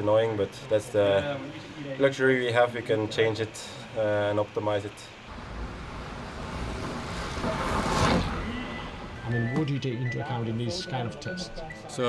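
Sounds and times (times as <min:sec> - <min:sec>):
bicycle tyres whooshing past: 0:05.3 - 0:09.4.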